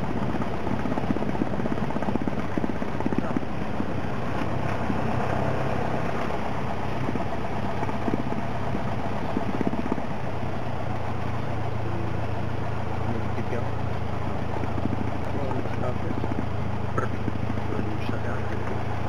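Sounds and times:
light aircraft engine and propeller: 0.0 - 19.0.

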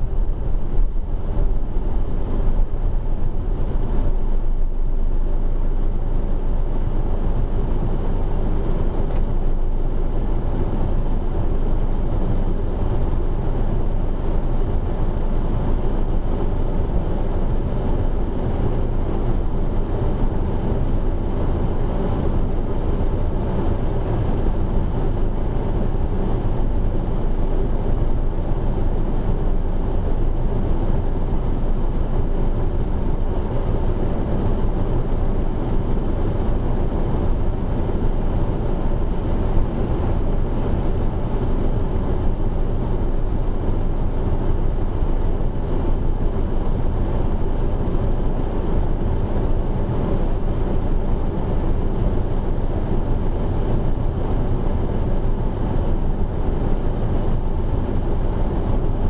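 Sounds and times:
car engine idling: 0.0 - 59.0.

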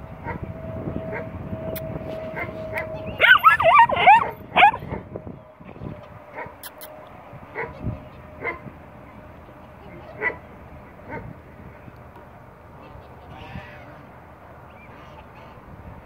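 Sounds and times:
small dog whining and yipping: 2.4 - 5.0.

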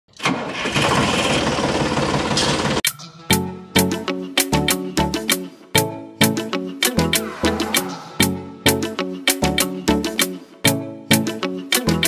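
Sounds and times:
tractor engine running: 0.2 - 2.9.

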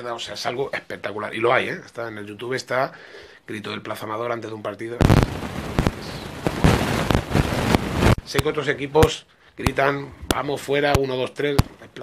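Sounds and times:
crackling static hiss: 0.0 - 12.0.

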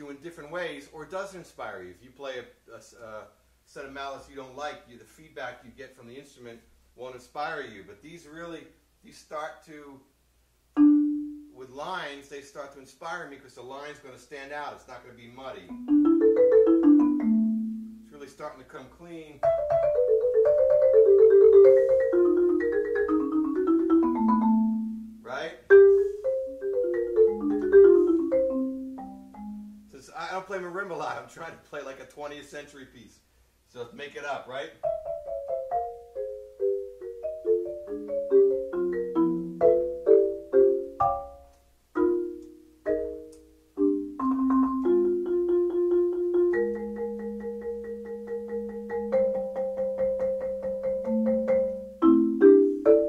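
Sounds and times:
marimba notes: 10.7 - 11.6, 15.6 - 18.2, 19.4 - 30.0, 34.8 - 53.0.

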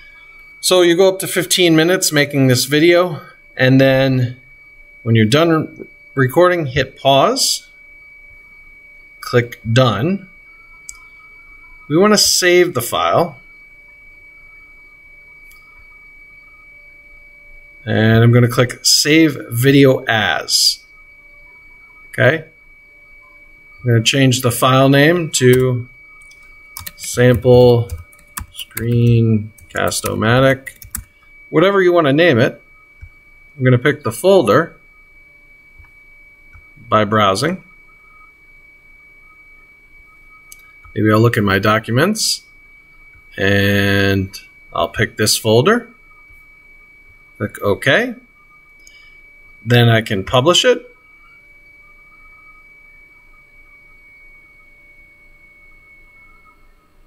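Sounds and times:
faint high-pitched whine: 0.0 - 57.0
thin high-pitched tone: 9.0 - 38.4.

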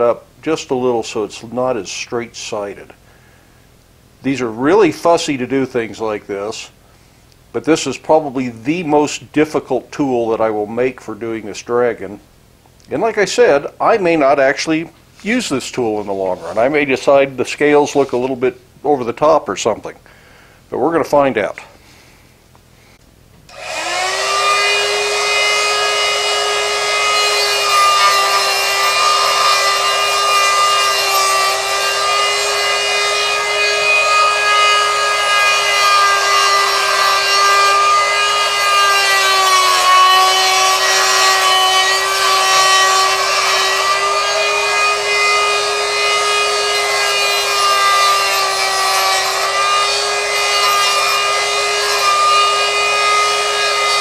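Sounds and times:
die grinder whining: 23.5 - 54.0.

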